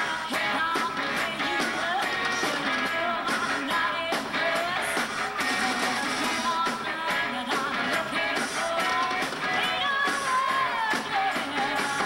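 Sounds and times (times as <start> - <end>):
electric guitar: 0.0 - 12.0
steady drum beat: 0.0 - 12.0.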